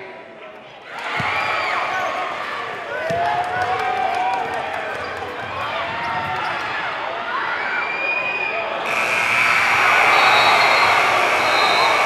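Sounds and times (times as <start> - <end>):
crowd chatter: 4.0 - 12.0.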